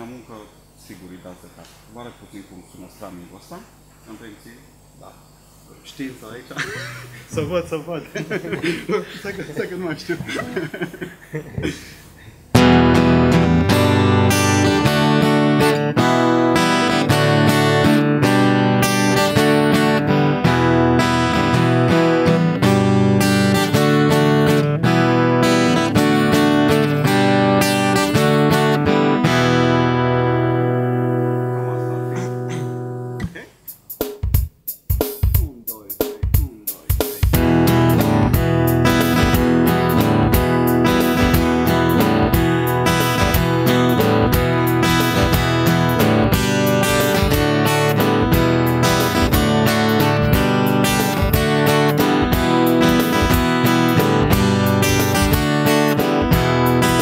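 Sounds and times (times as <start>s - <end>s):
acoustic guitar strumming: 12.5s - 57.0s.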